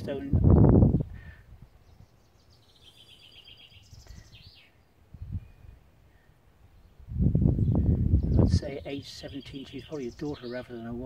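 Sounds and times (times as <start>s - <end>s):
songbird trilling: 1.7s - 7.0s, 7.6s - 11.0s.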